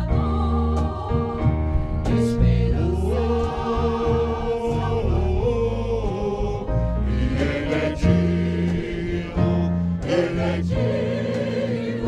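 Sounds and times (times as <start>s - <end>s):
choir singing a gospel hymn: 0.0s - 12.0s.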